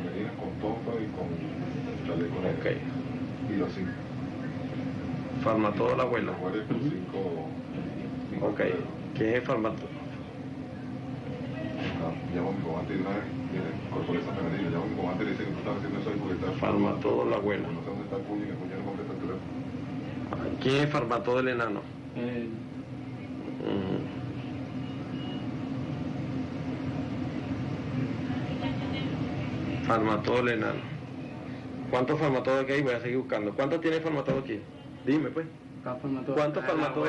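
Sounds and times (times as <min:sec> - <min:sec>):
hum: 0:00.0 - 0:37.0.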